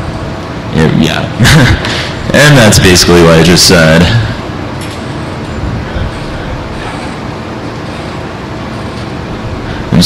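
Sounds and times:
large hall room noise: 0.0 - 10.0.

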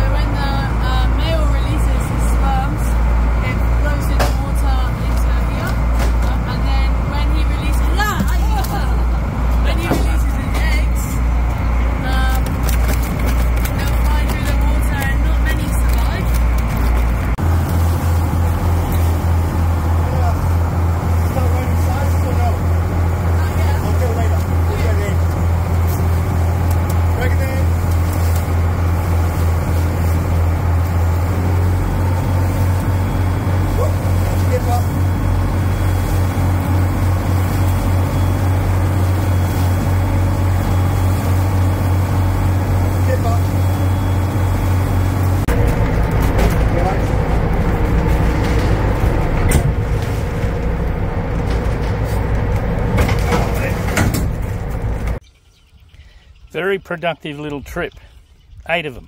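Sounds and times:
motor engine droning: 0.0 - 55.2.

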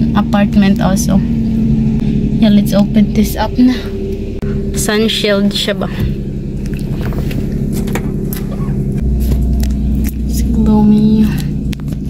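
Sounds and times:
car engine idling: 0.0 - 12.0
deep rumble: 0.0 - 12.0.

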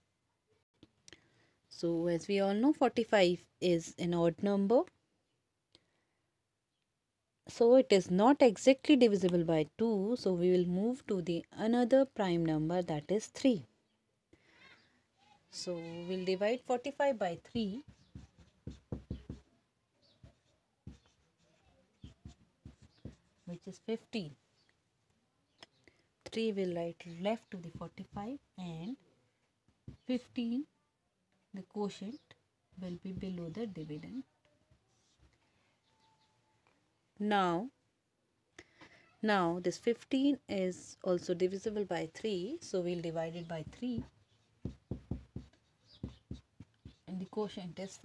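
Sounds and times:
marker pen scratching on paper: 17.4 - 24.1, 43.0 - 47.4.

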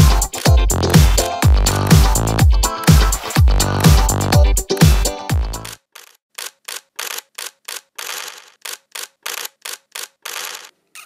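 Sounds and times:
sharp mechanical clicks: 0.1 - 0.8, 5.6 - 10.7
mechanical rattling bursts: 5.6 - 10.7.

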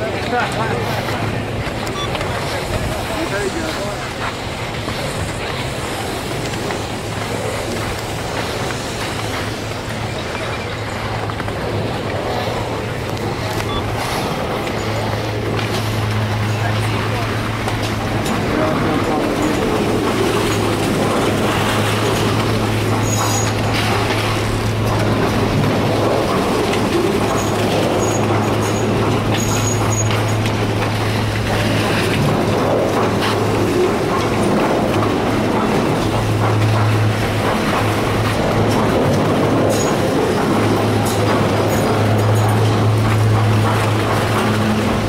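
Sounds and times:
chairlift machinery humming: 0.0 - 45.0
indistinct voices: 0.0 - 45.0.

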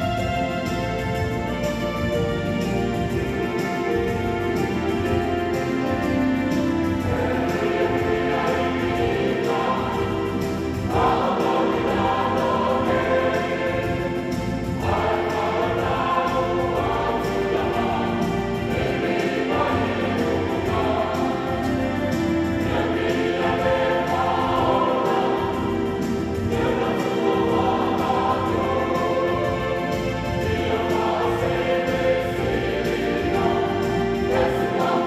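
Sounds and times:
choir singing a hymn: 0.0 - 35.0.

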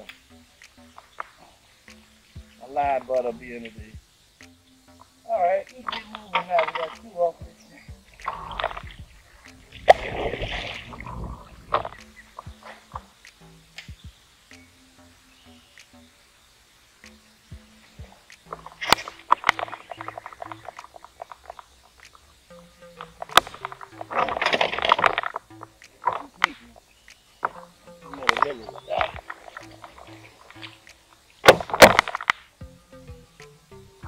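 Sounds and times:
music with stepping bass line: 0.0 - 1.2, 1.9 - 16.2, 17.0 - 21.3, 22.0 - 34.0
noise bursts and clicks: 0.0 - 34.0.

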